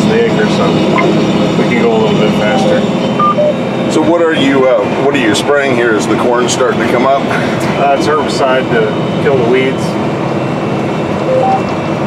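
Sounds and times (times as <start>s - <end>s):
sprayer cab running noise: 0.0s - 12.0s.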